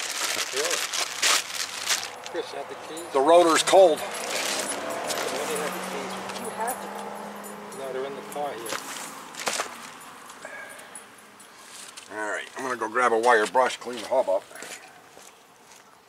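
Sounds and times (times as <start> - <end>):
metallic clinks of brake rotor: 2.8 - 8.8.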